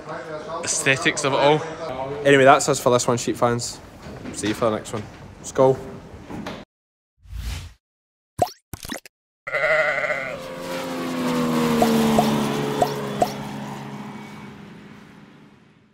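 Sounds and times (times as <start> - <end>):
sheep bleating: 9.5 - 10.5.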